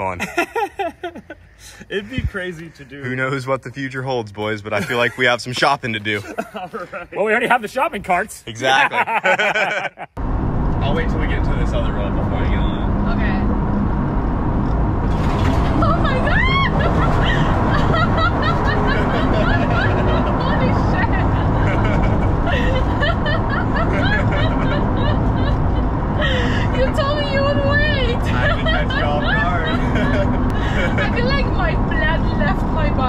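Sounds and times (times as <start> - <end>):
engine and road noise: 0.0 - 33.0
people laughing: 0.2 - 1.4, 4.7 - 5.4, 6.1 - 7.1, 8.6 - 10.1, 15.6 - 31.7.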